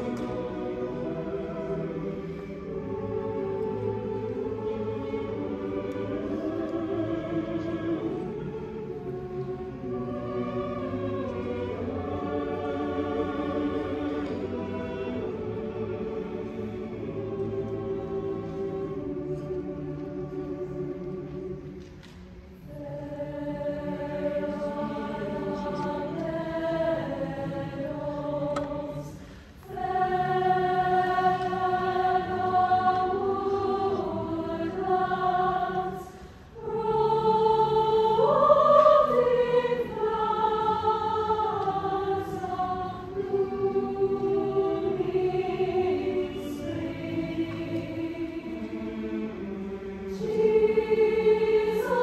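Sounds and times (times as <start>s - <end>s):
choir singing sustained chords: 0.0s - 52.0s.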